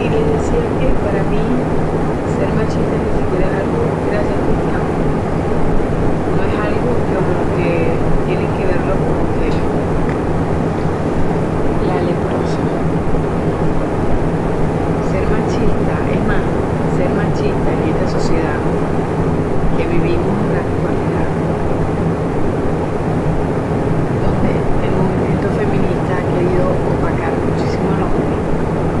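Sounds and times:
low hum and rumble: 0.0s - 29.0s
faint voice: 6.3s - 13.0s.

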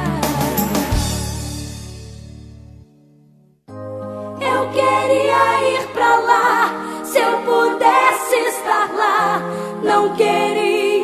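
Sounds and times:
low bass: 0.0s - 2.8s
choir singing a hymn: 4.3s - 11.0s.

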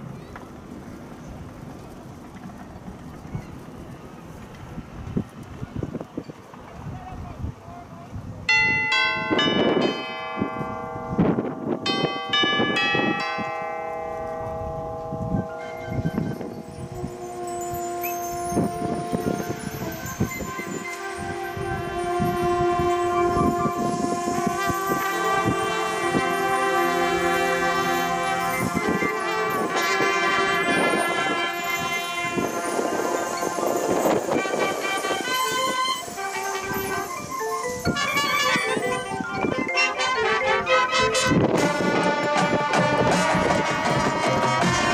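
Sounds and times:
mallet percussion and bells: 8.5s - 41.8s
wind and brass chords: 8.5s - 44.9s
percussion hits: 8.6s - 23.0s, 23.6s - 44.9s.

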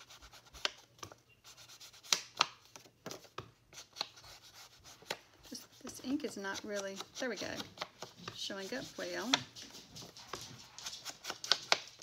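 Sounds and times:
foam tool scuffing on paper: 3.1s - 11.9s.

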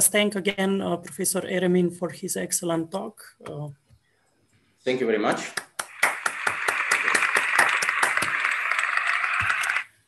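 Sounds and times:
applause over video call: 5.4s - 10.0s.

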